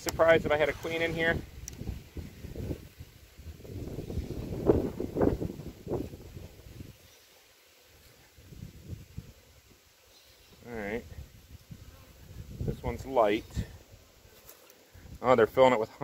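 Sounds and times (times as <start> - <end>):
wind on microphone: 0.0 - 7.0, 8.1 - 9.5, 11.0 - 13.8.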